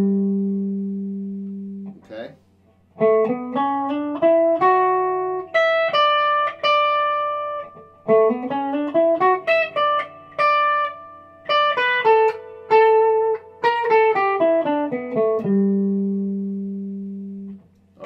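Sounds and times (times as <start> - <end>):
electric guitar melodic run: 0.0 - 2.0, 3.0 - 17.7.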